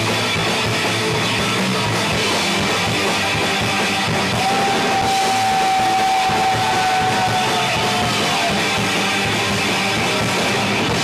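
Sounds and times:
industrial rock band playing: 0:00.0 - 0:11.0.

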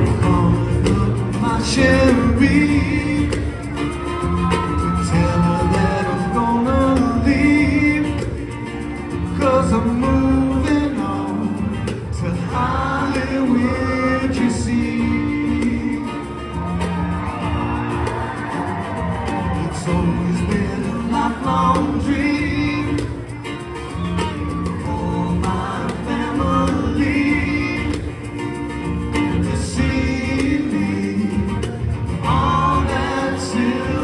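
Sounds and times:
acoustic guitars strumming: 0:00.0 - 0:34.0
person singing: 0:00.0 - 0:34.0.

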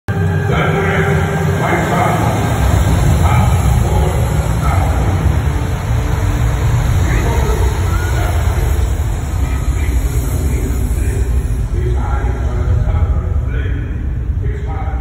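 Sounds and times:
deep steady rumble: 0:00.1 - 0:15.0
crowd chattering: 0:00.5 - 0:13.4.

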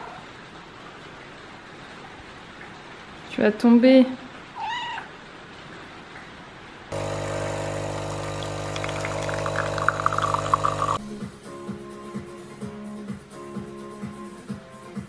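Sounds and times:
cat meowing: 0:04.6 - 0:05.1
espresso machine pump humming: 0:06.9 - 0:11.0
coffee streaming into mug: 0:07.0 - 0:11.0.

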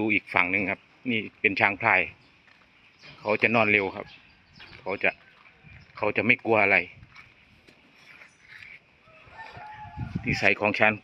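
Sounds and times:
faint open-air ambience: 0:00.0 - 0:11.0.

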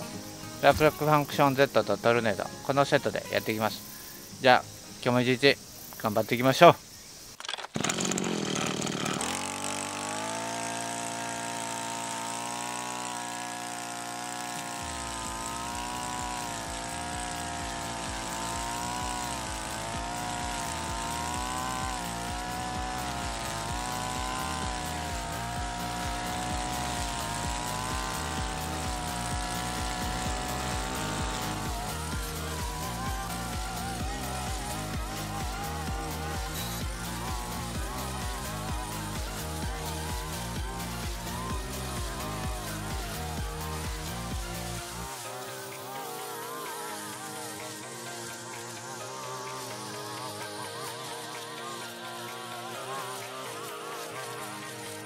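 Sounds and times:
brush cutter engine revving: 0:00.0 - 0:55.0
cord cutting through grass: 0:07.4 - 0:55.0
background music with a beat: 0:13.4 - 0:55.0.

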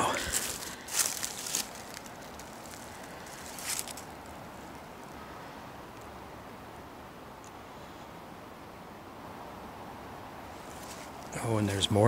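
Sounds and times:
footsteps rustling through brush: 0:00.0 - 0:05.4, 0:10.5 - 0:11.4
faint background hiss: 0:00.0 - 0:12.0.

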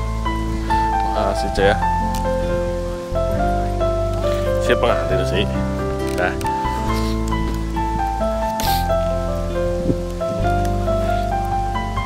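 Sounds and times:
gentle melody over steady bass: 0:00.0 - 0:12.0.

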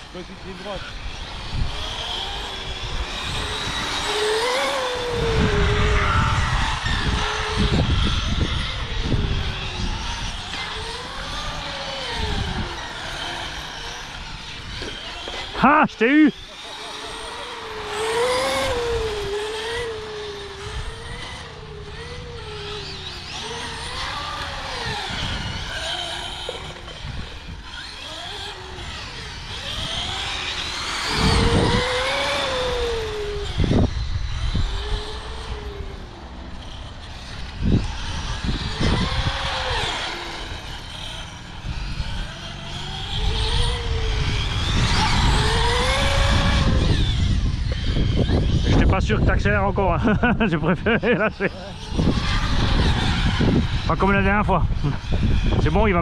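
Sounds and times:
model car motors whining: 0:00.0 - 0:56.0.

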